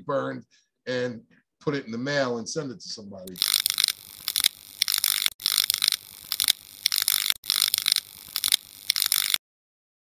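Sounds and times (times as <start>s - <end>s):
mechanical ratcheting clicks: 3.3s - 9.4s.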